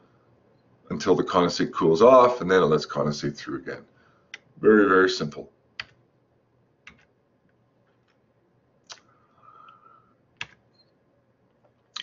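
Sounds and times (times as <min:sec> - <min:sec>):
computer clicks: 0:05.8 - 0:06.0.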